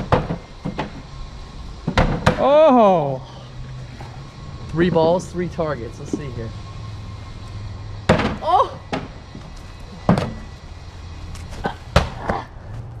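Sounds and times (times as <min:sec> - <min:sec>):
balls thudding on wooden stand: 0:00.0 - 0:01.0, 0:01.8 - 0:02.4.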